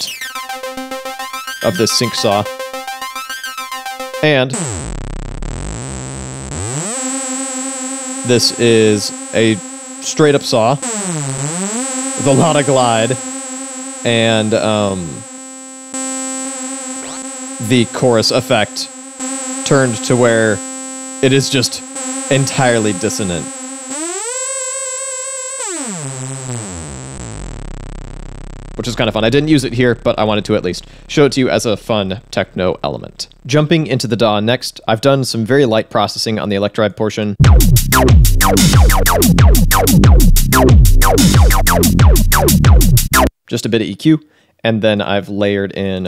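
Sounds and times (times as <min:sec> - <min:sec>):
synth note gliding down: 0:00.0 - 0:15.4, 0:37.4 - 0:43.3.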